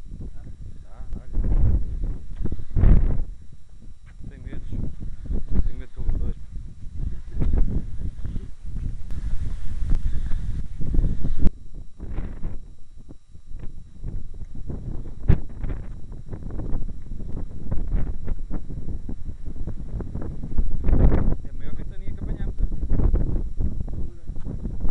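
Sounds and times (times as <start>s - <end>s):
microphone handling: 0.0s - 24.9s
wind rumble: 0.0s - 24.9s.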